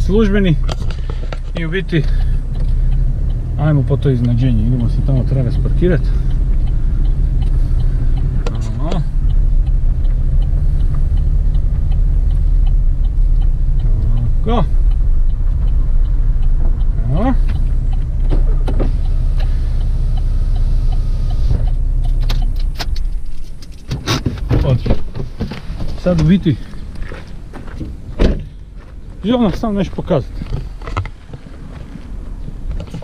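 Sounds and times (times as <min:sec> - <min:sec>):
car engine and road rumble: 0:00.0 - 0:33.0.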